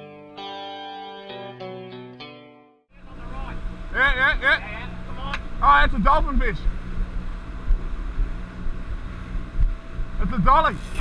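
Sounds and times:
boat engine humming: 0:02.9 - 0:11.0
wind buffeting microphone: 0:03.1 - 0:11.0.

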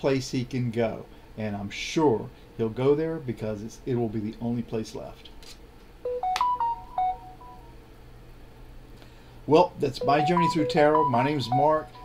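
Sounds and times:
low steady hum: 0:05.9 - 0:12.0
short electronic beeps: 0:10.0 - 0:12.0.

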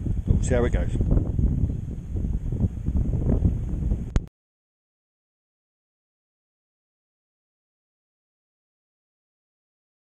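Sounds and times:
wind buffeting microphone: 0:00.0 - 0:04.3.

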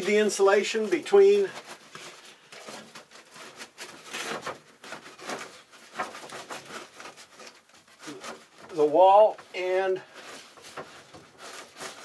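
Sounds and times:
foil insulation sheet crinkling: 0:00.0 - 0:12.0.

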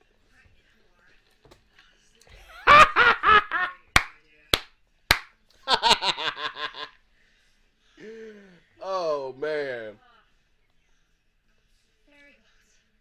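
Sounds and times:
sharp slaps: 0:04.0 - 0:05.3
man laughing hard: 0:05.7 - 0:06.9.

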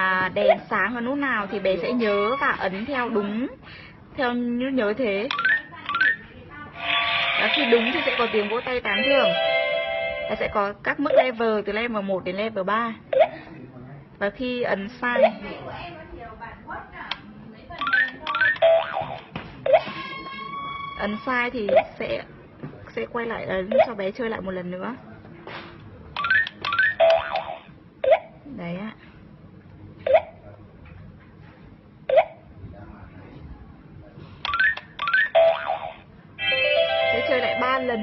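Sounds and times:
toy held beep: 0:05.3 - 0:06.2, 0:17.8 - 0:22.0.

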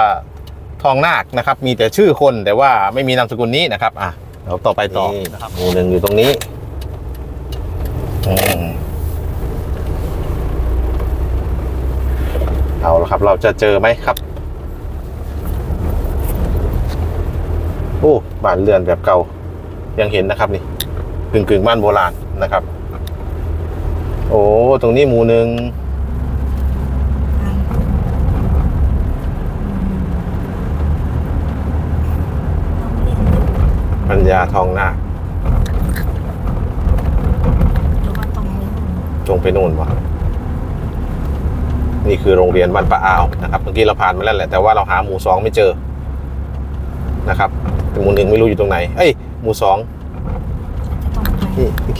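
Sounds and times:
car engine and tyres rumble: 0:00.0 - 0:51.9.

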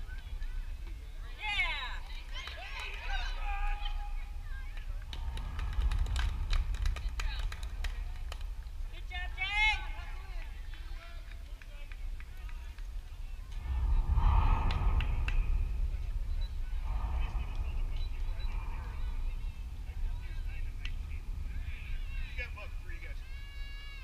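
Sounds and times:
spectators' voices: 0:00.0 - 0:24.0
wind rumble on microphone: 0:00.0 - 0:24.0.

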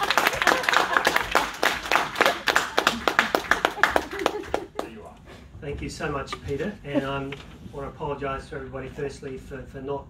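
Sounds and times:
audience applauding: 0:00.0 - 0:05.0
close loud clapping: 0:00.0 - 0:05.0.

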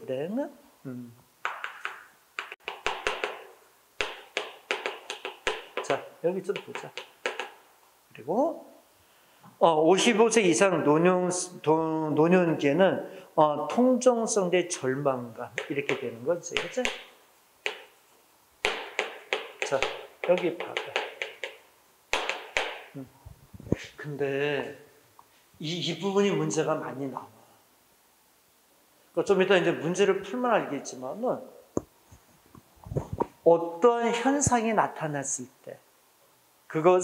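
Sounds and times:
chalk tapping on blackboard: 0:01.4 - 0:07.6, 0:15.6 - 0:18.0, 0:18.6 - 0:23.0.

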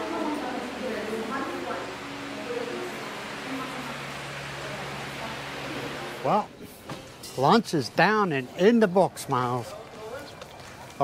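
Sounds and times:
restaurant room noise hiss: 0:00.0 - 0:11.0.

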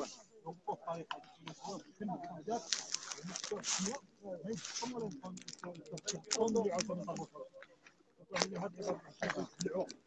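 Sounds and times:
people talking: 0:00.0 - 0:10.0
clicks and rustles: 0:02.6 - 0:08.6.

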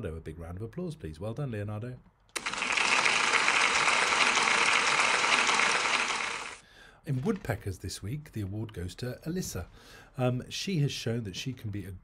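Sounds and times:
crowd applause: 0:02.4 - 0:06.6.

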